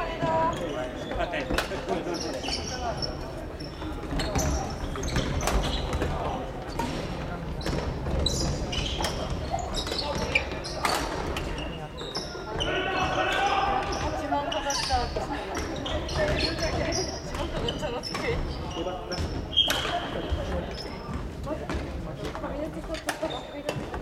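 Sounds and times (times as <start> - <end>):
people calling out: 12.5 - 15.0.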